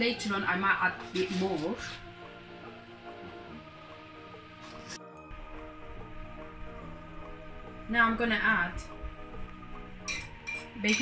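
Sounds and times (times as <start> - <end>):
background music: 0.0 - 11.0
metal spoon clinking ceramic bowl: 10.0 - 11.0.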